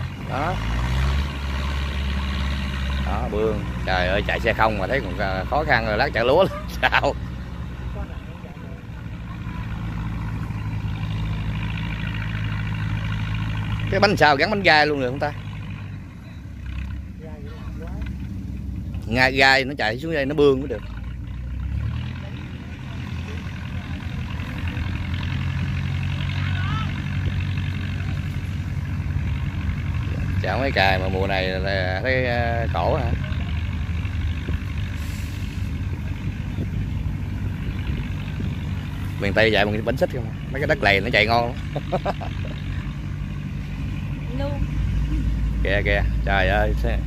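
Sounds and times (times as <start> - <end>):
tractor diesel engine running: 0.0 - 47.0.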